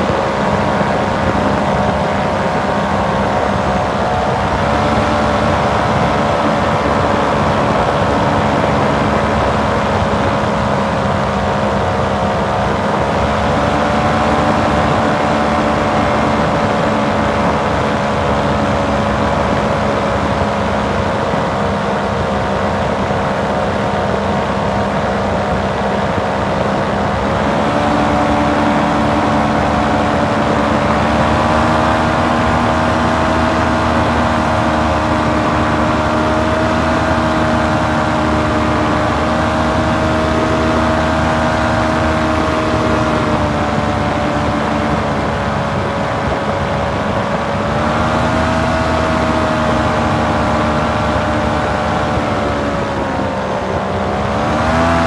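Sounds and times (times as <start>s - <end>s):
paramotor engine droning: 0.0s - 55.0s.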